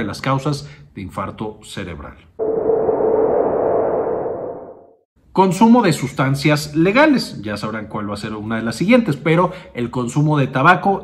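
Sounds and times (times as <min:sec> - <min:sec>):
steady mid-pitched tone: 0:02.4 - 0:05.0.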